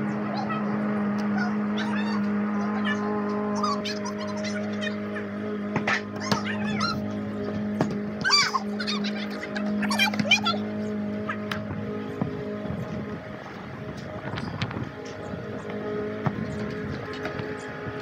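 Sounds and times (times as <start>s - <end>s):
children's voices warbling: 0.0s - 11.7s.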